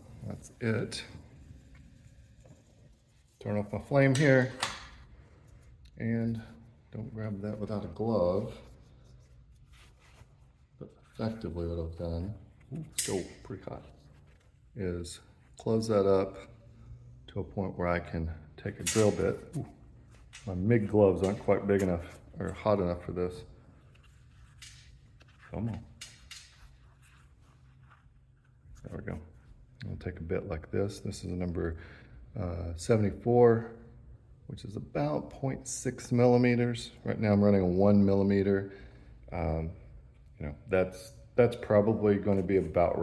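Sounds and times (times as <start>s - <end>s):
low steady hum: 0.0s - 43.0s.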